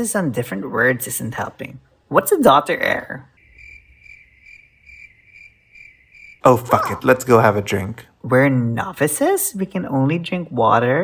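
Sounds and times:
cricket chirping: 0:03.4 - 0:07.0.

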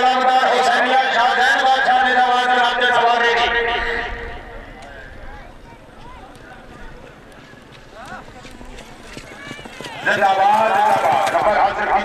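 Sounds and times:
horse hooves galloping on dirt: 0:06.0 - 0:12.0.

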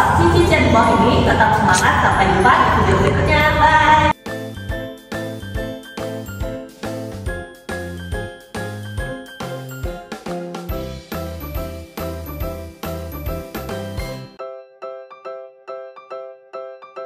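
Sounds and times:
chiming music over bass line: 0:04.2 - 0:10.1.

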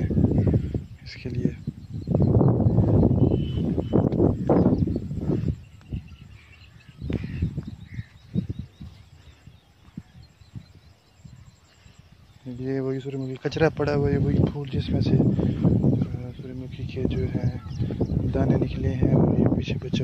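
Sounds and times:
faint bird chirps: 0:00.0 - 0:19.4
wind rumbling on microphone: 0:00.0 - 0:20.0.

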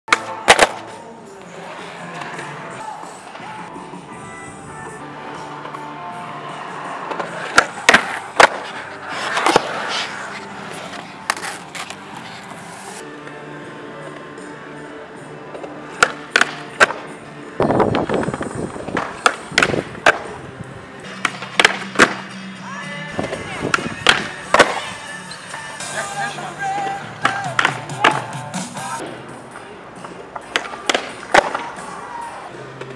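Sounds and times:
skateboard clacks: 0:00.1 - 0:03.5, 0:06.6 - 0:12.9, 0:15.5 - 0:17.1, 0:17.7 - 0:20.4, 0:21.1 - 0:22.4, 0:23.2 - 0:25.0, 0:26.1 - 0:32.9
background music: 0:00.1 - 0:32.9
skateboard wheels rolling on concrete: 0:00.1 - 0:32.9
skateboard knocking on concrete ledge: 0:18.9 - 0:20.3.

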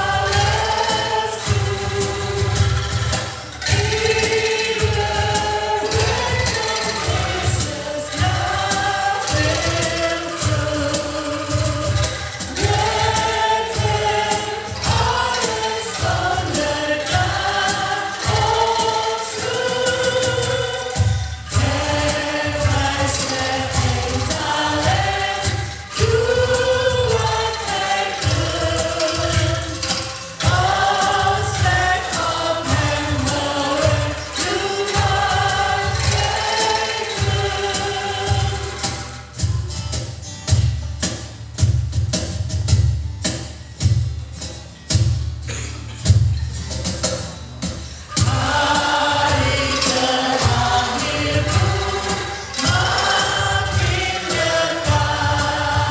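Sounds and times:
female trio singing hymn: 0:00.0 - 0:39.0, 0:48.1 - 0:55.9.

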